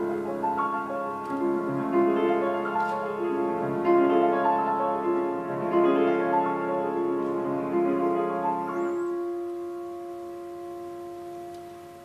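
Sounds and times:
grand piano chord ringing: 0.0 - 12.0.

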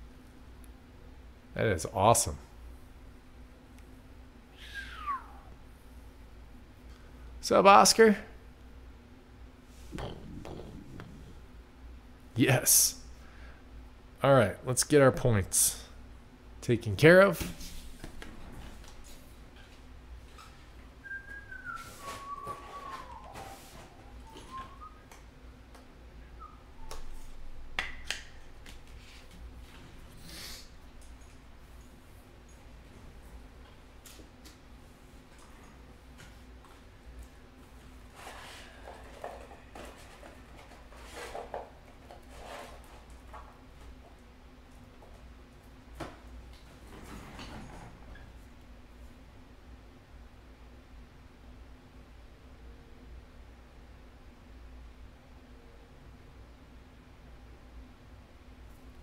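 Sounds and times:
steady low hum: 0.0 - 59.0
person whistling softly: 4.5 - 5.5, 21.0 - 25.1, 26.3 - 27.4
rustling and handling noise: 28.3 - 45.3.

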